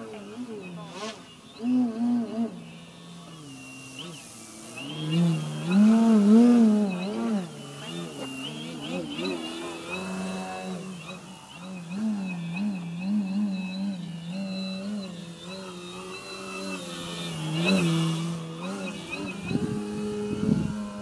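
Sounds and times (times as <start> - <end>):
model plane motor droning: 0.0 - 21.0.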